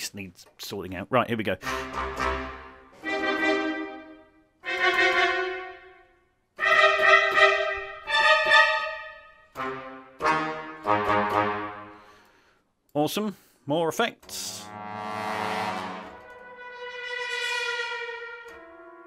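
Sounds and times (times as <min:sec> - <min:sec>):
accented brass chords with reverb: 0:01.6 - 0:12.2, 0:14.4 - 0:19.0.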